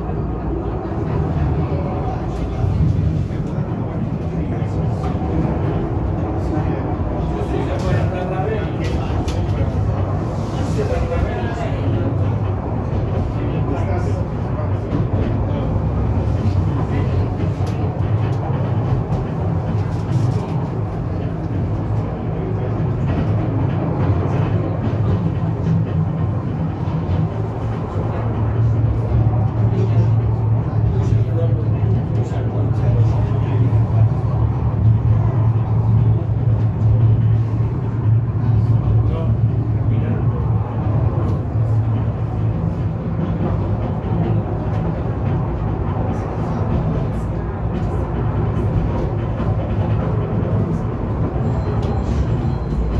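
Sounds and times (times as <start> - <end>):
funicular car running: 0.0 - 52.9.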